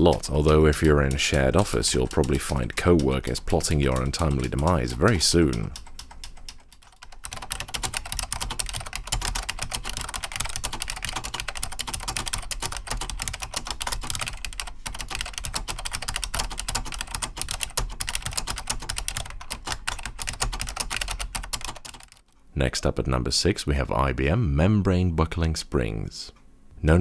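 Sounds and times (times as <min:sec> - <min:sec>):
fast clicky keyboard typing: 0:00.0 - 0:22.3.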